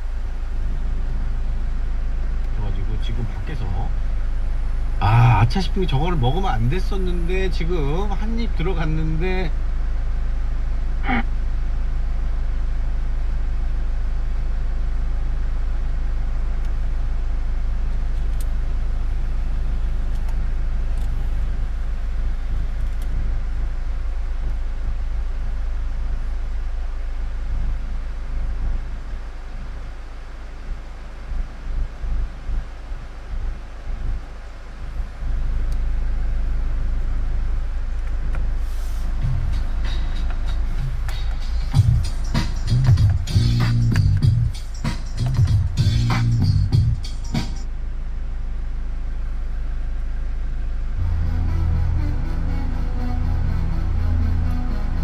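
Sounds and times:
low rumble in car cabin: 0.0 - 55.0.

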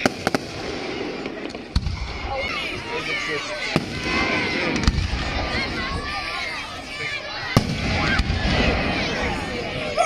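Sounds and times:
firework shells bursting with bangs: 0.0 - 2.1.

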